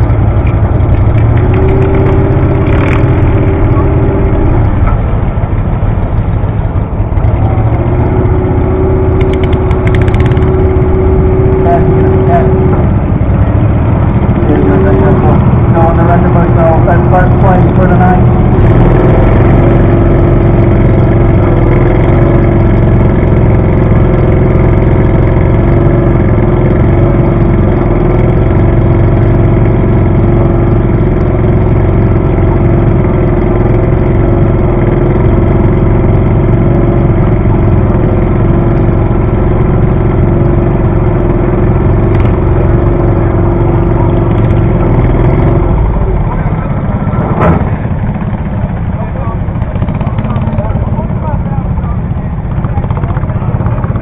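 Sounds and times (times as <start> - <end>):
engine idling: 0.0 - 54.0.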